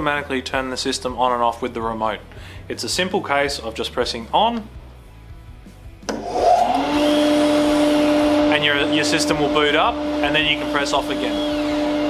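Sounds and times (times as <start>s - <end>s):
dust extractor motor drone: 6.1s - 12.0s.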